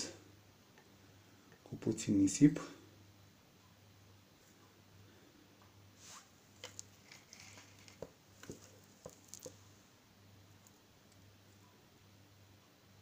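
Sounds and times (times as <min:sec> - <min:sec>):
faint low hum: 0:00.0 - 0:13.0
small objects clicking and rustling: 0:06.6 - 0:09.7.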